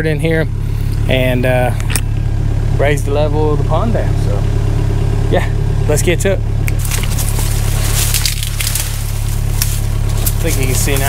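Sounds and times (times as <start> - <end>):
diesel engine idling: 0.0 - 11.0
sharp clicks and crunches: 6.7 - 11.0.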